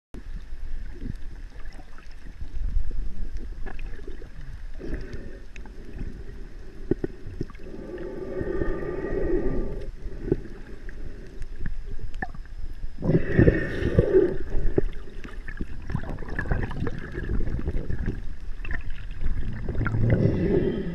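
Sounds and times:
low rumble of moving water: 0.2s - 20.9s.

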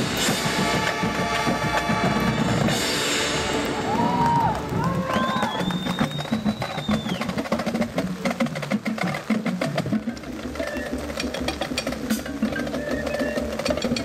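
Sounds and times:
bass drums: 0.0s - 14.0s
snare drums: 0.0s - 14.0s
tenor drums: 0.0s - 14.0s.

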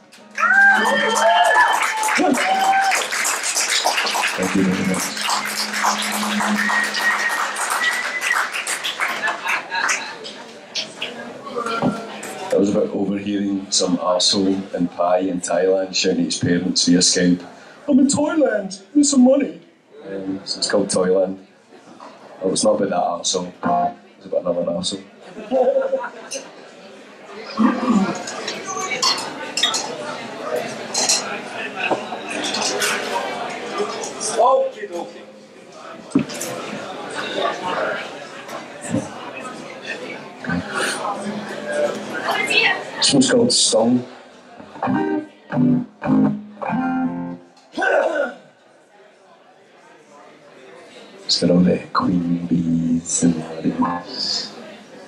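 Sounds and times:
murmur of voices: 0.0s - 55.0s
audience clapping: 0.1s - 11.3s
high steady whistle: 5.5s - 8.5s.

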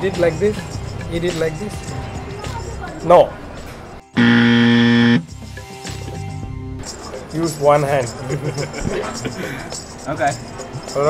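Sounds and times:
low harsh buzzer: 4.2s - 5.3s.

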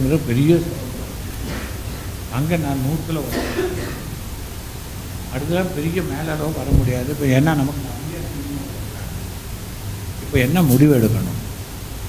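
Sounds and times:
man speaking: 0.0s - 1.2s, 2.3s - 3.8s, 5.3s - 9.2s, 10.2s - 11.4s
microphone rumble and hiss: 0.0s - 12.0s.

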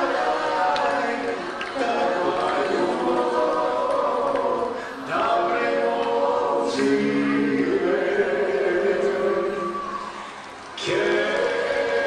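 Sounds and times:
family singing together: 0.0s - 10.0s, 10.8s - 12.0s.

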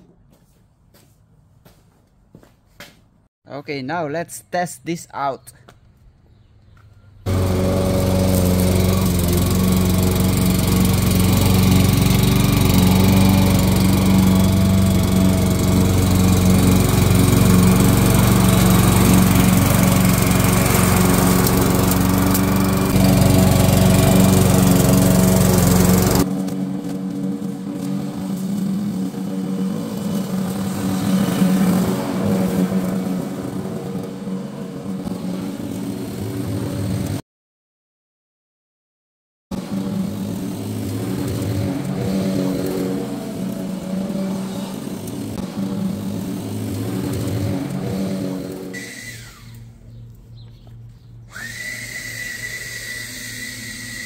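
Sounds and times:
lawn mower engine running: 7.3s - 37.2s, 39.5s - 54.0s.

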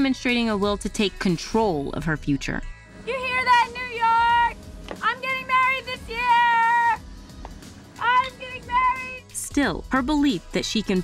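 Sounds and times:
woman shouting: 3.0s - 7.0s, 8.0s - 9.6s.

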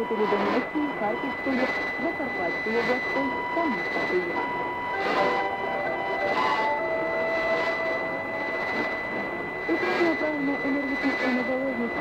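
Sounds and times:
constant high whistle: 0.0s - 12.0s
long held tones: 0.0s - 12.0s
static hiss: 1.4s - 12.0s.

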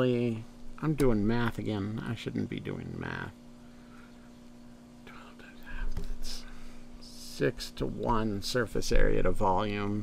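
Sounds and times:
steady low hum: 0.0s - 10.0s
man whispering and muttering: 5.0s - 6.5s.

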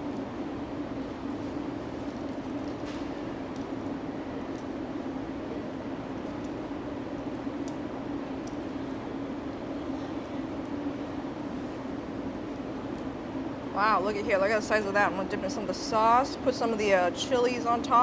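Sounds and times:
low background hum: 0.0s - 18.0s
shrimp being peeled clicks: 6.1s - 9.0s.

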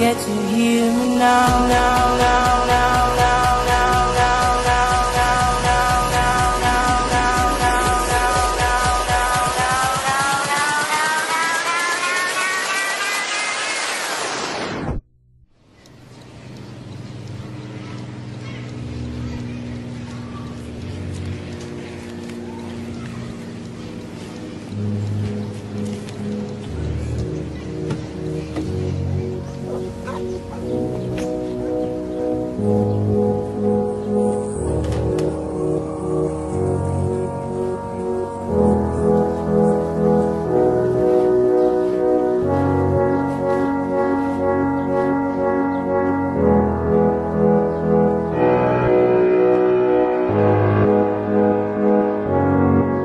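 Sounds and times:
song with sustained rising tones: 0.0s - 14.8s, 15.7s - 53.0s
instrumental music with low notes: 15.8s - 53.0s.

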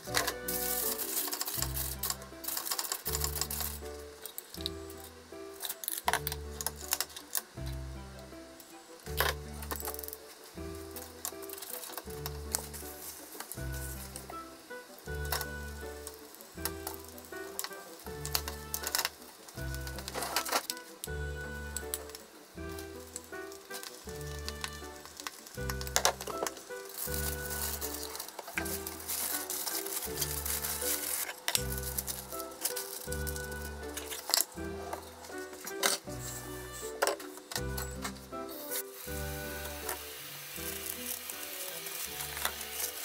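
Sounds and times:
background music with held notes: 0.0s - 43.0s
omelette sizzling in frying pan: 0.0s - 43.0s.

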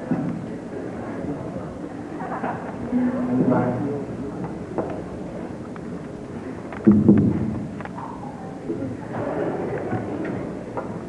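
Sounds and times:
auditorium room noise: 0.0s - 11.0s.

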